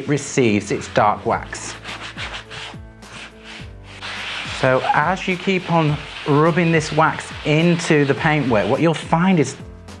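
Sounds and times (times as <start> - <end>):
background music: 0.0 - 10.0
cloth rubbing fabric: 0.8 - 9.0.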